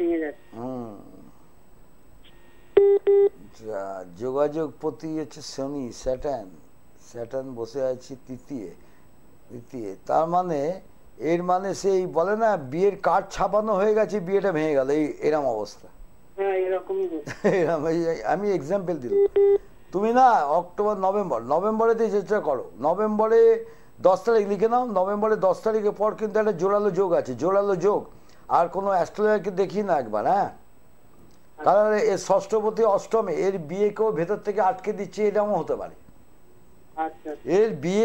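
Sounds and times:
voices on a telephone line: 0.0s - 1.2s, 16.4s - 17.3s, 37.0s - 38.0s
electronic beeps over telephone: 2.2s - 3.4s, 19.1s - 19.6s.

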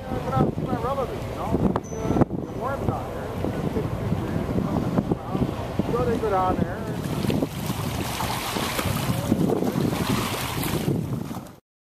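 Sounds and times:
wind blowing across microphone: 0.0s - 11.6s.

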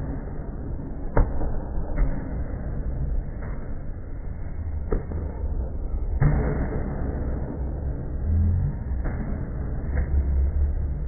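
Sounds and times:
low rumble of hall: 0.0s - 11.0s.

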